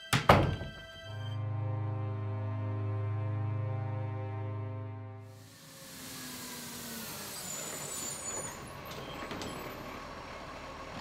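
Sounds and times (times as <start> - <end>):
low pulsing ominous music drone: 0.5 - 5.3.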